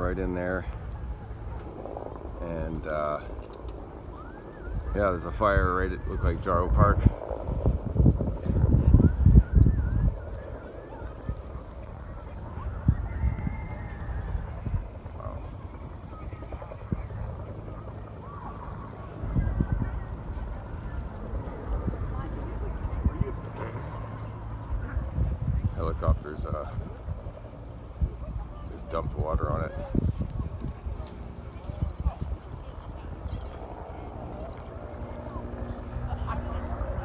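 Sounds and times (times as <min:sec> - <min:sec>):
faint distant voices: 0:00.0 - 0:37.0
wind gusting on microphone: 0:00.0 - 0:37.0.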